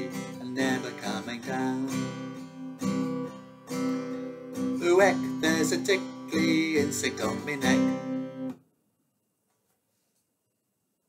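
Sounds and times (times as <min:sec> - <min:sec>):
acoustic guitar chords strummed: 0:00.0 - 0:08.6.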